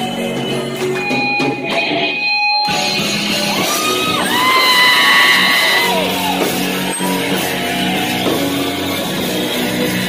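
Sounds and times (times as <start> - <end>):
singer's long high yell: 3.6 - 6.4.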